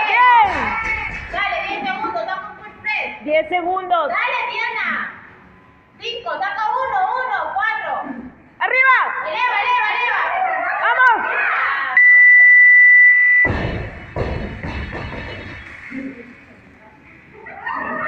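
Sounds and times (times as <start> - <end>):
heavy thud: 13.5 - 15.6.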